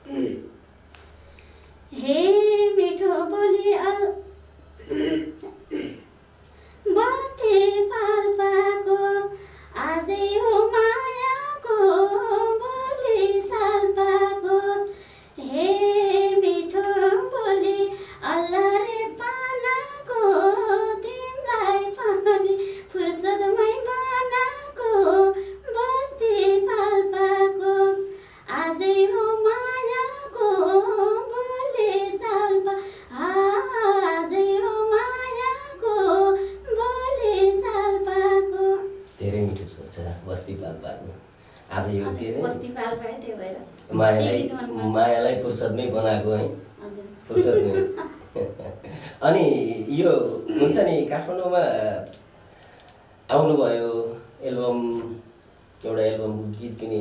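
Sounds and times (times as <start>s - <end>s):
woman singing unaccompanied: 1.9s - 4.4s, 6.8s - 39.1s, 42.0s - 45.1s.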